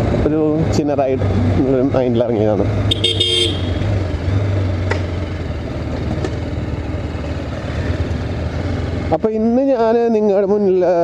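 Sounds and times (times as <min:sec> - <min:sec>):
motorcycle engine running: 0:01.2 - 0:10.7
horn toot: 0:02.9 - 0:04.0.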